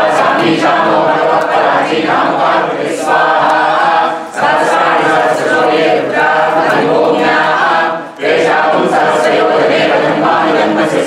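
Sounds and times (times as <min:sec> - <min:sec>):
group chanting in unison: 0:00.0 - 0:11.0.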